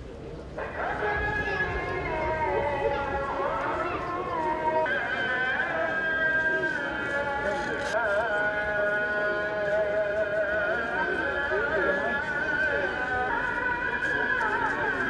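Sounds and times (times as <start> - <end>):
murmur of crowd: 0.0 - 15.0
person singing long held notes: 0.9 - 15.0.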